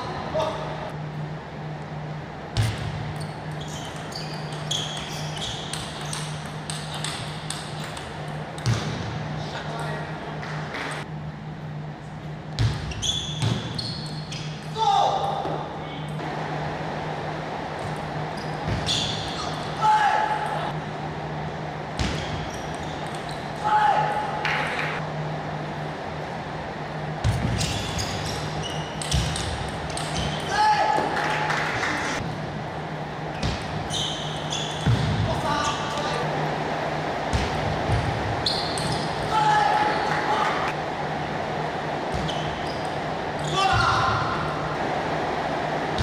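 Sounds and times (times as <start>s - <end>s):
low hum in hall: 0.0s - 46.0s
player shouting: 19.8s - 20.7s.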